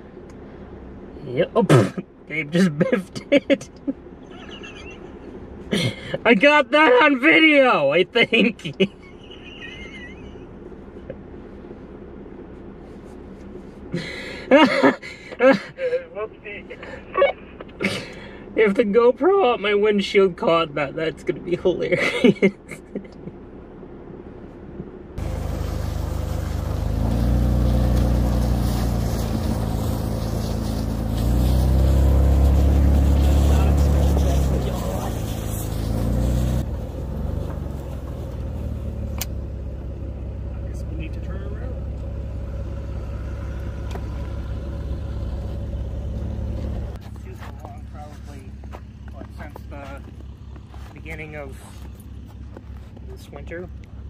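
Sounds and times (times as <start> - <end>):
car engine revving: 25.2 - 54.0.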